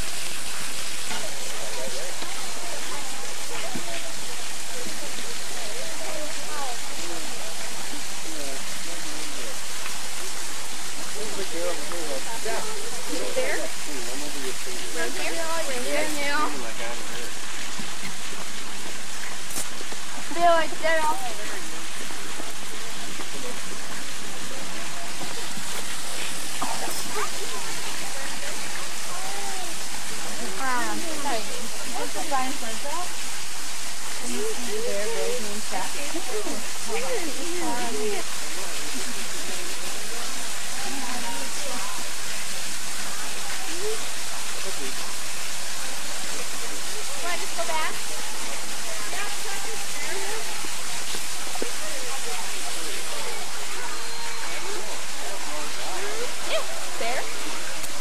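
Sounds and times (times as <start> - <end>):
steady hiss: 0.0 - 58.0
people and children talking: 11.2 - 17.1, 20.2 - 21.8, 24.7 - 33.2, 34.1 - 45.2, 46.2 - 58.0.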